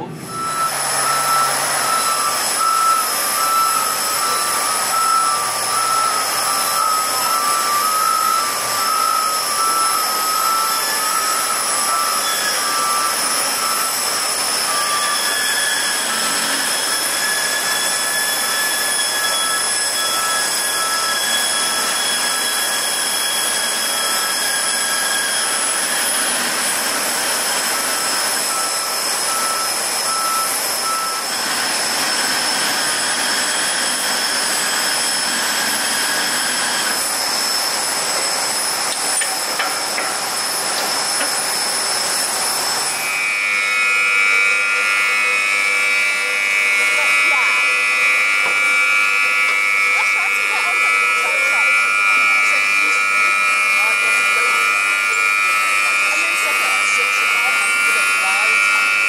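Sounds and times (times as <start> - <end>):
aircraft turbines whining: 0.0 - 59.0.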